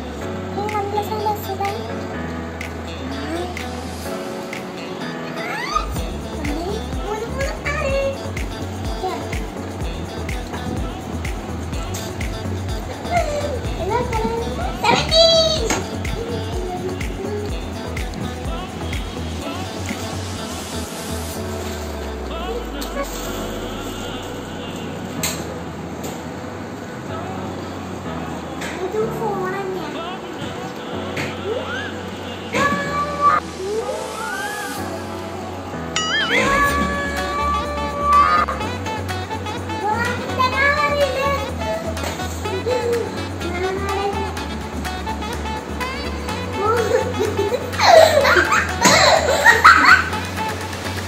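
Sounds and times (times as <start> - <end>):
background music with steady beat: 0.0 - 51.0
girl's voice: 0.5 - 2.1, 2.8 - 3.9, 5.0 - 20.1, 28.7 - 30.2, 31.5 - 35.1, 36.0 - 38.8, 39.4 - 50.2.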